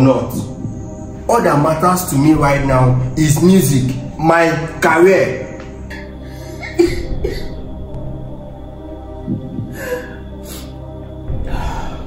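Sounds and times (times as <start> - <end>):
slow background music: 0.0 - 12.0.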